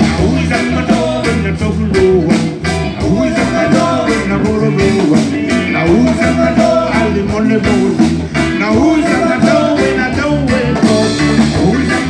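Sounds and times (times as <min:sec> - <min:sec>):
drums: 0:00.0 - 0:12.0
electric guitar: 0:00.0 - 0:12.0
keyboards: 0:00.0 - 0:12.0
man singing: 0:00.0 - 0:12.0.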